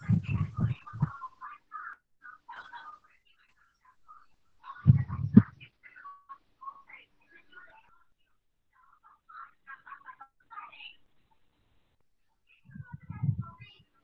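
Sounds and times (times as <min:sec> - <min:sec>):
faint voices over video call: 0:00.0 - 0:14.0.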